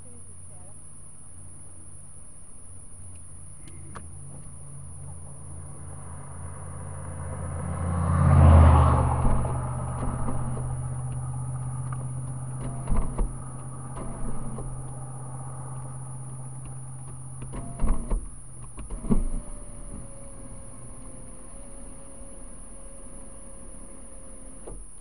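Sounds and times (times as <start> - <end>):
car engine idling: 0.0 - 25.0
vehicle passing: 4.1 - 17.6.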